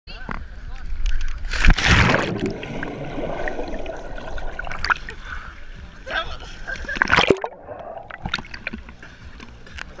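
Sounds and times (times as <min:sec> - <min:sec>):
water sloshing around microphone: 0:01.3 - 0:10.0
splash into pool: 0:01.5 - 0:05.1
underwater bubbling and rushing: 0:01.5 - 0:05.8, 0:06.8 - 0:09.0.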